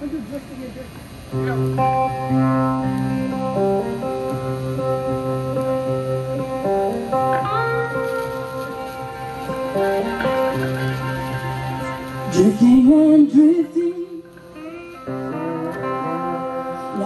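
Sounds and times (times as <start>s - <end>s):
cigar box guitars playing blues: 0.1s - 17.0s.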